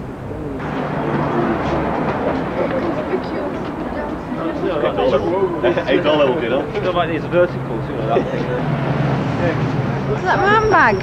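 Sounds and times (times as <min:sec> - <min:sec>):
faint indistinct voices: 0:00.0 - 0:11.0
low steady street rumble: 0:00.0 - 0:11.0.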